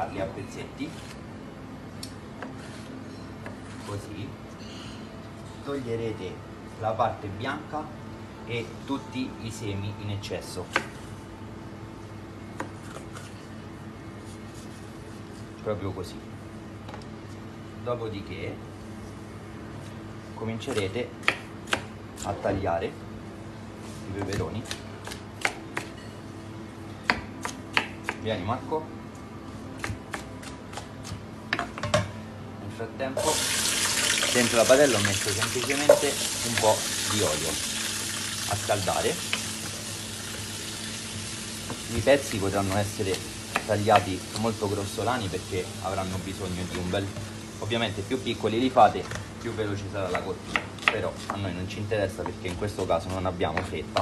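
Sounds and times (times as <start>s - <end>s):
low steady hum: 0.0s - 54.0s
peppers sizzling in hot oil: 33.2s - 48.0s
knife cutting pepper on board: 50.1s - 51.4s.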